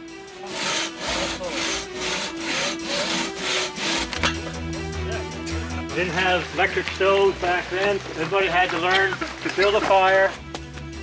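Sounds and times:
hand saw cutting through log: 0.4 - 4.4.

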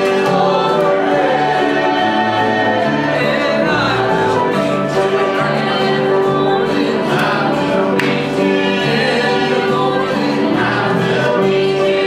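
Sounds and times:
congregation singing a hymn: 0.0 - 12.0.

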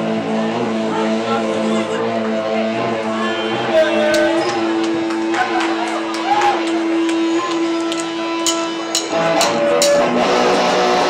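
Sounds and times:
bass guitar: 0.0 - 11.0
electric guitars: 0.0 - 11.0
drums: 3.5 - 11.0.

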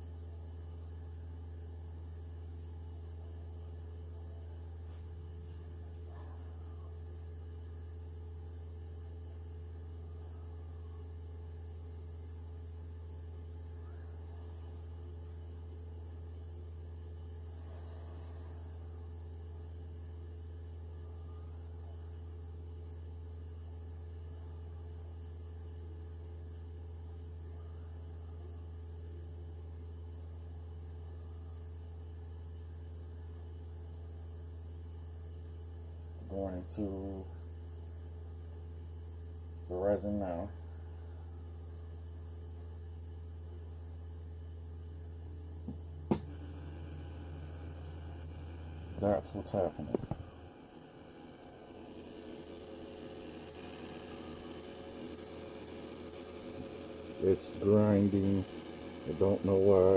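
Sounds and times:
stepper motor humming: 44.2 - 59.9.

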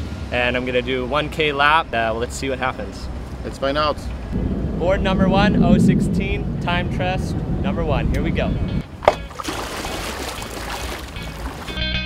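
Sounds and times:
water splashing around paddleboard: 9.0 - 11.8
guitar music: 10.7 - 12.0.

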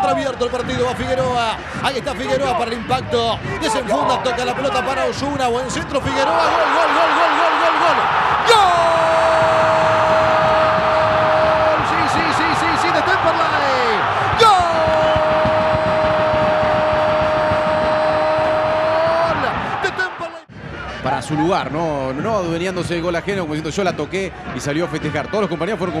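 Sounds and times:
stadium crowd noise: 0.0 - 26.0.

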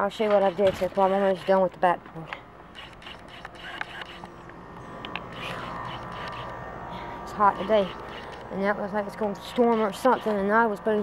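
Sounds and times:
low outdoor hum: 0.0 - 11.0
camera handling noise: 2.7 - 4.4, 5.0 - 6.6, 7.9 - 8.5.

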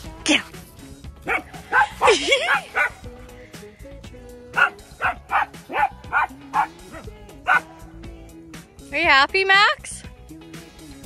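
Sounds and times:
background music with held notes: 0.0 - 11.0
dog barking: 1.2 - 3.0, 4.6 - 7.7.

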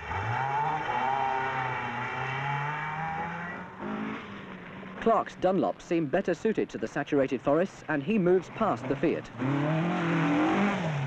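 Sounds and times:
rally car engine at high revs: 0.0 - 5.0, 8.5 - 11.0.

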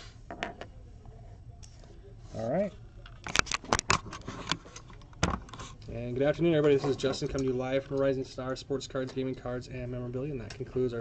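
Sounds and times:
objects clicking and rattling on desk: 3.1 - 5.7.

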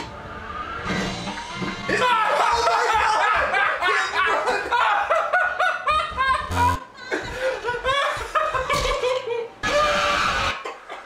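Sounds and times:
young men laughing: 2.0 - 9.6.

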